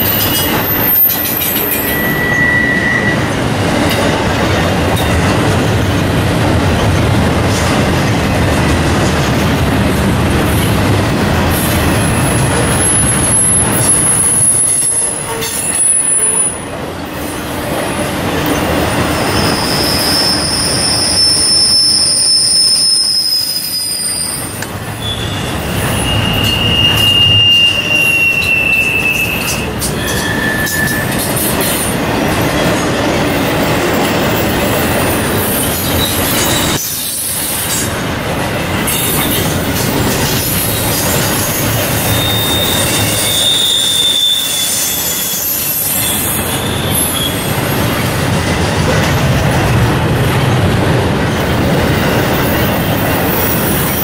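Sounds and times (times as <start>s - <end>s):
high-pitched wheel squeals: 0.0s - 3.4s, 11.8s - 16.6s, 19.0s - 31.4s, 40.5s - 47.9s
freight train wheels rumbling on rail: 0.0s - 54.0s.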